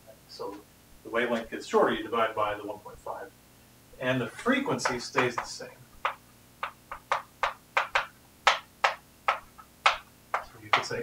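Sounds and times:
chalk scratching on blackboard: 4.8s - 10.9s.

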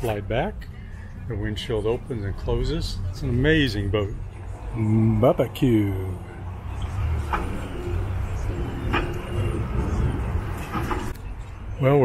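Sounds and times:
outboard motors droning: 0.3s - 11.2s.

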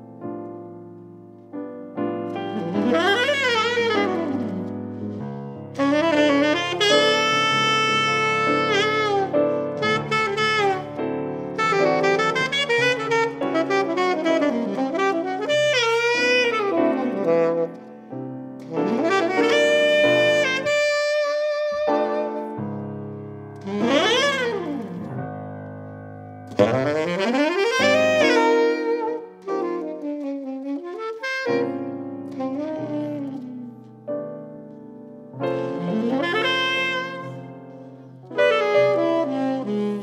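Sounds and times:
piano accompaniment: 0.0s - 40.0s
saxophone melody: 2.0s - 25.6s, 26.5s - 34.8s, 35.4s - 40.0s.

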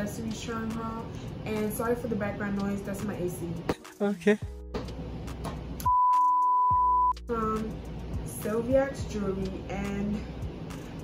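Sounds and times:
background music: 0.0s - 6.0s, 6.7s - 11.0s
loud test-pattern beep: 5.8s - 7.2s.

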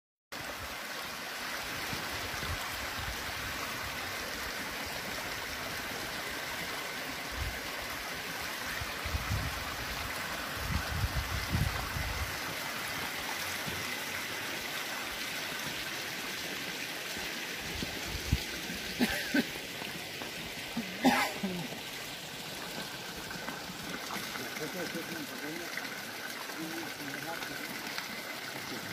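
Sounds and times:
water trickling over rocks: 0.3s - 28.9s.

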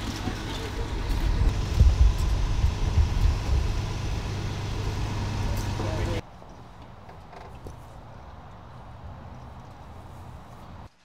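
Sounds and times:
bus engine rumbling: 0.0s - 6.2s
quiet outdoor ambience: 0.1s - 11.0s.

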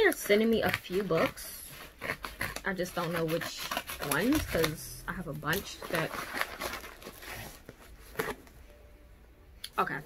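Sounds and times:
packaging rustling and crinkling: 0.0s - 8.7s.

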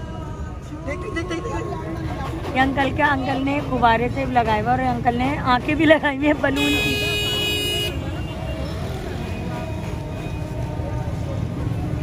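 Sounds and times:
low rumble of traffic: 0.0s - 12.0s
people chattering: 0.0s - 12.0s.

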